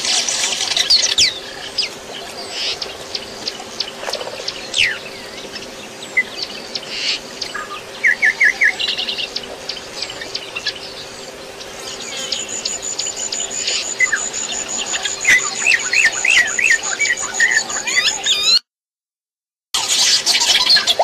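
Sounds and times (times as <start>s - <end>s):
birds chirping: 0.0s - 18.6s
insect drone: 0.0s - 18.6s.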